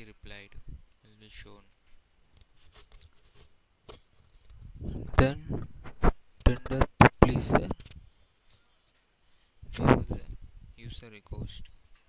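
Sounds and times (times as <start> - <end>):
faint scratchy noises: 0.0 - 12.0.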